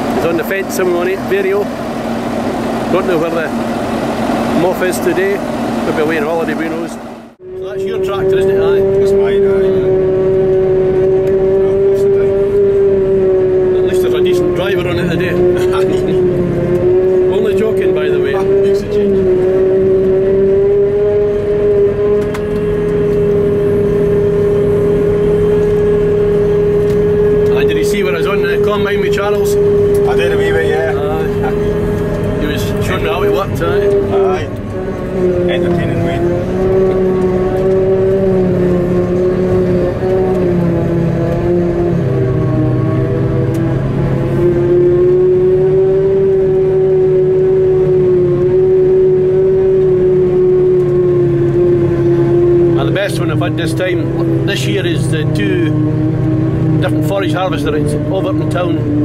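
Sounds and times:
forage harvester whine: 0.0s - 59.0s.

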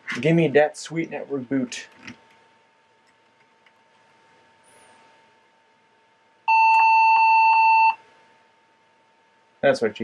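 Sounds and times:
computer speaker steady beep: 6.5s - 8.0s.

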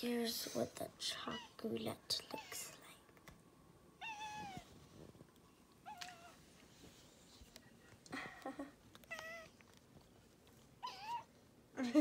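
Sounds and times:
cat meowing: 4.0s - 4.7s, 9.1s - 9.5s, 10.8s - 11.3s.

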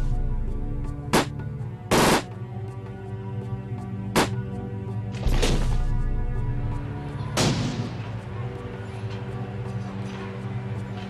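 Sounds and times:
film score sustained tones: 0.0s - 11.0s
gunshots: 1.9s - 2.3s, 7.4s - 8.1s.

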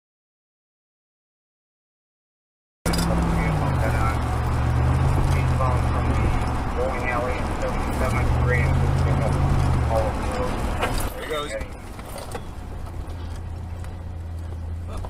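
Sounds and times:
car driving drone: 2.9s - 15.0s
voices talking: 2.9s - 15.0s.

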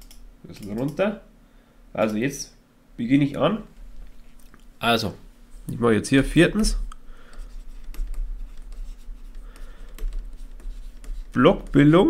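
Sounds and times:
low electrical hum: 0.0s - 12.0s
stylus tapping on screen: 6.9s - 12.0s
stylus scratching on tablet screen: 7.3s - 12.0s.

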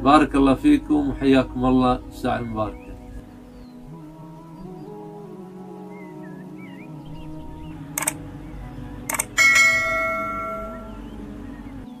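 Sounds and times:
soft background music: 0.0s - 12.0s
clicks: 8.0s - 8.2s, 9.1s - 9.4s
bright bell chime: 9.4s - 11.0s.

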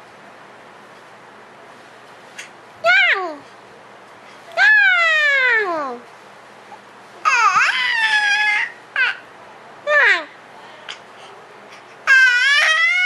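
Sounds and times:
infant squealing: 7.2s - 9.2s, 12.0s - 13.0s.

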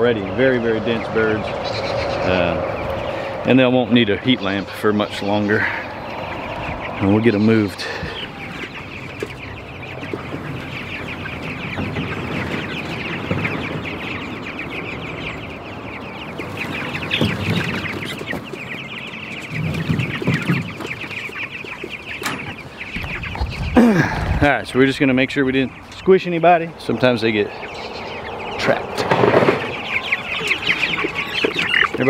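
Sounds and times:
chicks peeping: 0.0s - 32.0s.

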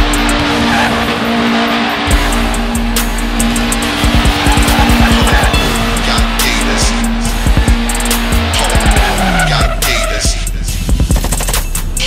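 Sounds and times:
motorcycle engine running: 0.0s - 9.5s
hip hop music: 0.0s - 12.0s.

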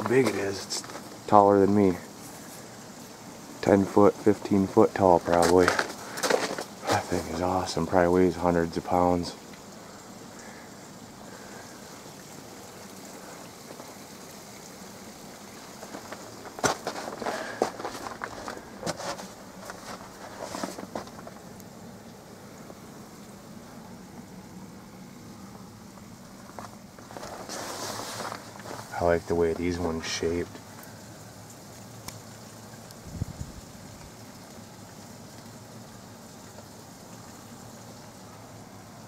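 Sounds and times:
footsteps crunching on snow: 0.0s - 2.7s, 3.6s - 7.8s, 15.5s - 21.5s, 26.3s - 30.0s
rushing water: 3.6s - 21.6s.

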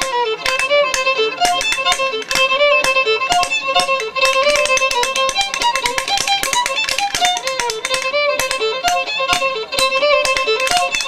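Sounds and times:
fiddle playing a reel: 0.0s - 11.0s
wooden spoons clicking rhythm: 0.0s - 11.0s.

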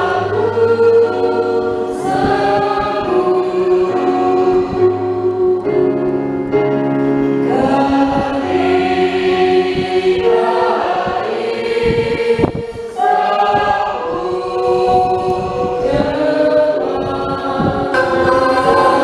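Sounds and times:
group singing a hymn: 0.0s - 6.3s, 7.3s - 19.0s
electronic keyboard: 0.0s - 19.0s.

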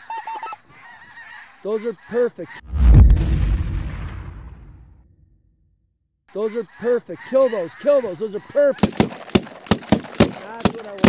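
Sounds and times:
deep boom with low rumble: 2.6s - 5.7s.

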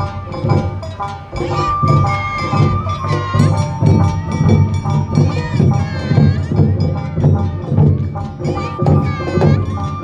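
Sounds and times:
bamboo flute melody: 0.0s - 10.0s
taiko drums beating: 0.0s - 10.0s.

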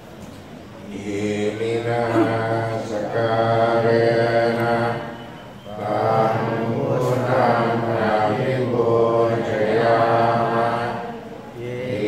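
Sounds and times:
group chanting in unison: 0.8s - 12.0s.

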